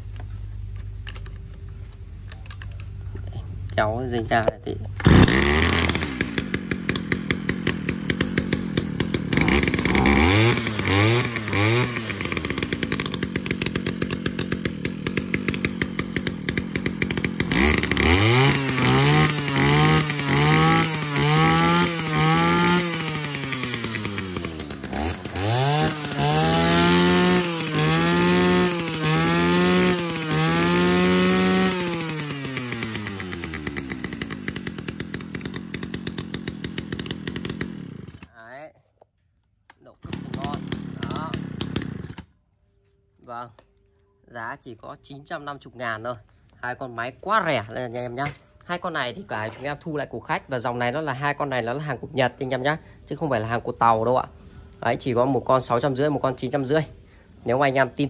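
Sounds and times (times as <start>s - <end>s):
brush cutter engine revving: 2.5s - 38.4s, 39.7s - 42.4s, 47.2s - 51.0s.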